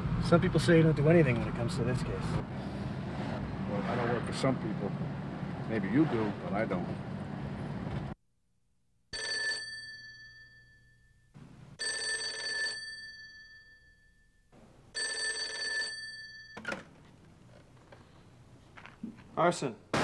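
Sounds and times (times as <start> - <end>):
telephone bell ringing: 9.2 - 16.8.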